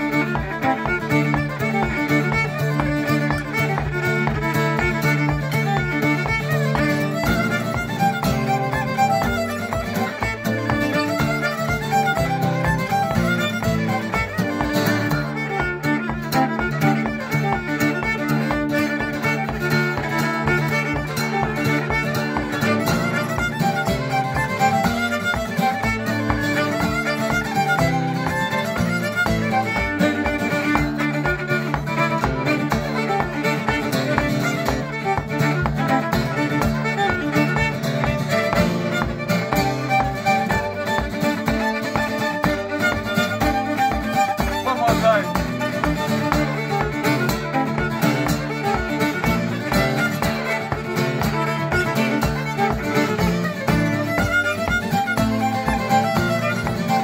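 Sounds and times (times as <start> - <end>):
acoustic guitar strumming chords: 0.0 - 57.0
fiddle playing fast melody: 0.0 - 57.0.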